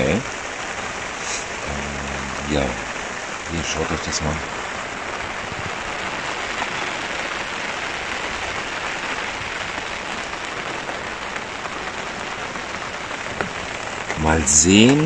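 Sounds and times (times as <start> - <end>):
heavy rain pouring: 0.0 - 15.0.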